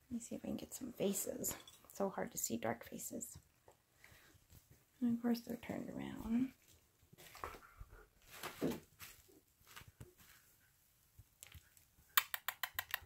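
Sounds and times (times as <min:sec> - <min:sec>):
sharp clicks: 0:12.2 - 0:13.0.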